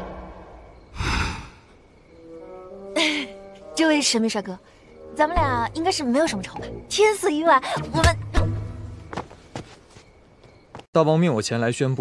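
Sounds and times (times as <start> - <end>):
person's sharp breath: 0.9 - 1.7.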